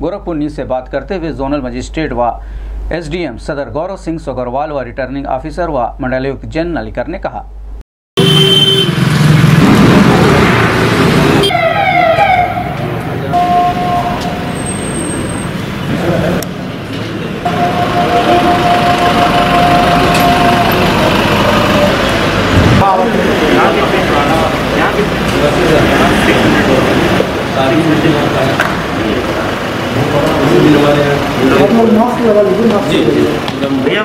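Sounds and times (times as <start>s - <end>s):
vehicles: 8.2s - 34.0s
steady held tone: 10.2s - 15.5s, 17.4s - 22.4s
wavering gliding wail: 11.4s - 14.6s, 17.5s - 22.2s
people's voices: 15.8s - 34.0s.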